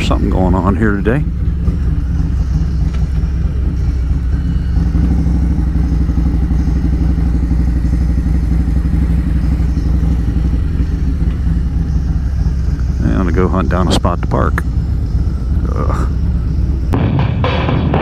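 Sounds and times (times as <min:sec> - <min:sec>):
motorcycle engine running: 0:00.0 - 0:18.0.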